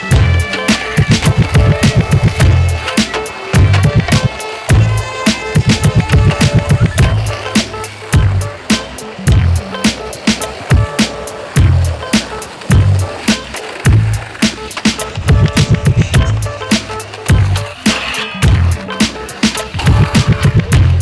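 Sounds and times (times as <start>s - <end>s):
music with steady drum beat: 0.0s - 21.0s.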